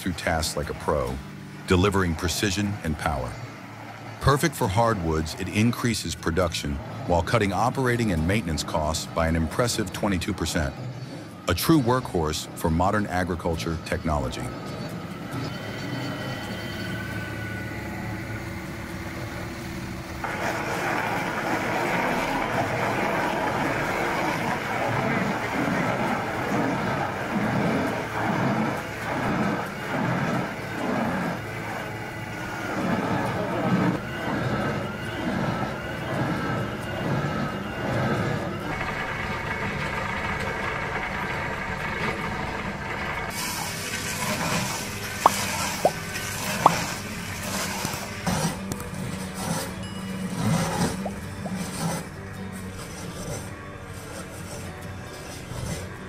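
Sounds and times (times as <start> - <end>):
stump grinder chewing wood: 0.0 - 56.0
tractor engine under load: 0.0 - 56.0.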